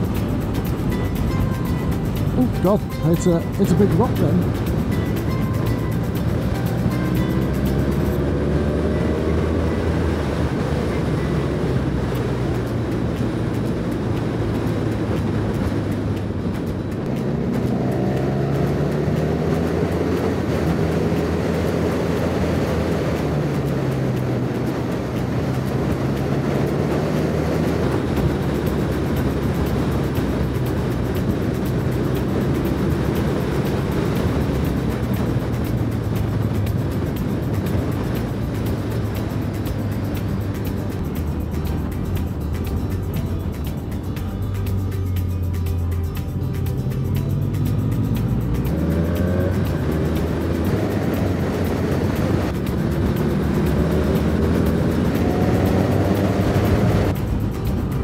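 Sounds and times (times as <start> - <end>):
motorcycle engine running: 0.0 - 58.0
wind and road rush: 0.0 - 58.0.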